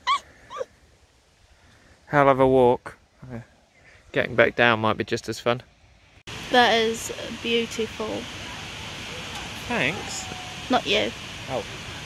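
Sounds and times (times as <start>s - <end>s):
high-pitched cries: 0.0s - 0.7s.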